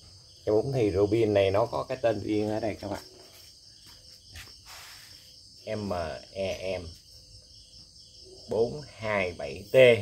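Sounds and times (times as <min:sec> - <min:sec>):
crickets trilling: 0:00.0 - 0:10.0
soft rustle: 0:02.8 - 0:05.4.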